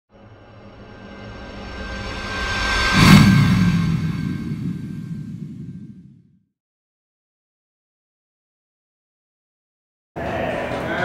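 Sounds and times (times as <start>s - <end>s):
rising whoosh: 0.2s - 6.4s
low boom: 0.4s - 6.4s.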